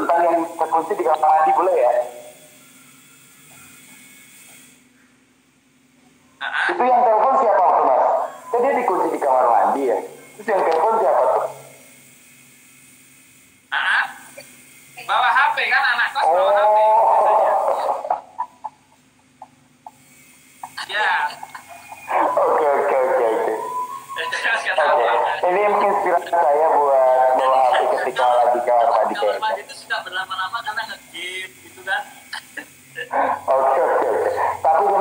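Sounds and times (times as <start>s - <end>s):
faint steady hum: 0.0s - 35.0s
man's voice: 22.1s - 30.9s, 33.1s - 35.0s.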